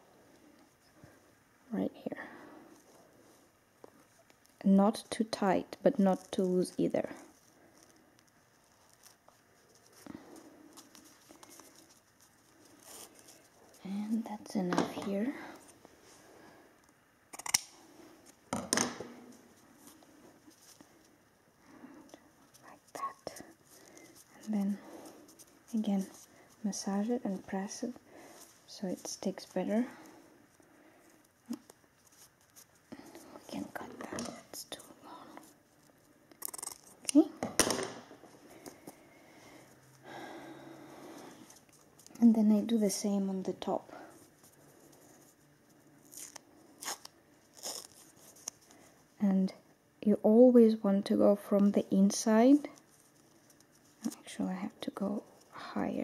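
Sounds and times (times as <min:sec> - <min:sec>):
hands rustling athletic tape: 0:05.9 - 0:42.4, 0:43.0 - 0:49.2, 0:52.6 - 0:55.6
tape ripping off roll: 0:46.0 - 0:48.5.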